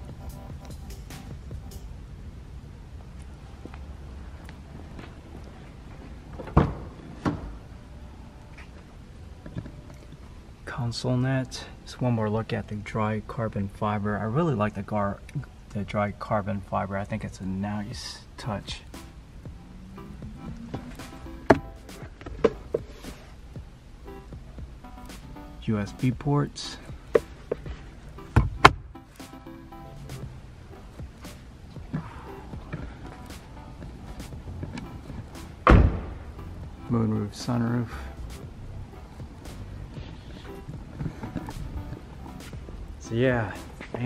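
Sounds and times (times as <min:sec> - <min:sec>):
low steady rumble: 0:00.0 - 0:44.0
soft background music: 0:00.0 - 0:44.0
car door latch knocks: 0:35.6 - 0:36.2.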